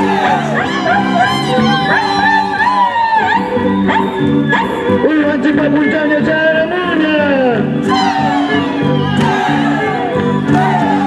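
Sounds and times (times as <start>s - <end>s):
high-pitched singing: 0.0s - 5.1s, 7.8s - 11.0s
folk dance music: 0.0s - 11.0s
sharp rising yelp: 7.9s - 11.0s.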